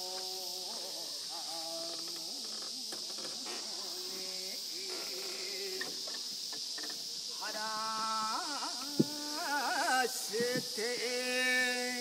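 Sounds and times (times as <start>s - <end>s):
cicadas droning: 0.0s - 12.0s
faint human voices: 0.0s - 12.0s.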